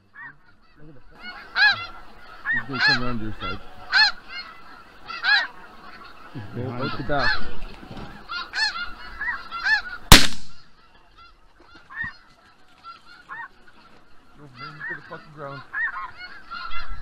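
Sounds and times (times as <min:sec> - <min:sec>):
geese honking: 0:00.0 - 0:17.0
shotgun shot: 0:10.1 - 0:10.6.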